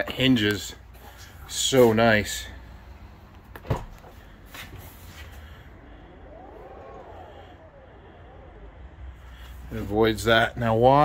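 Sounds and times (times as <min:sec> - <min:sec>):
door motor whining: 0:04.9 - 0:10.0.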